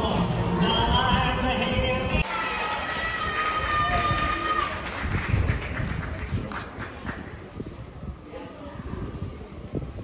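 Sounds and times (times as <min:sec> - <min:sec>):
wind buffeting microphone: 0:03.2 - 0:10.0.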